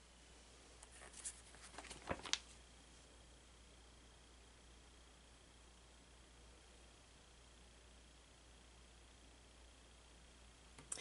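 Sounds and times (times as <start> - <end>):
paper page rustling: 0.8 - 2.6.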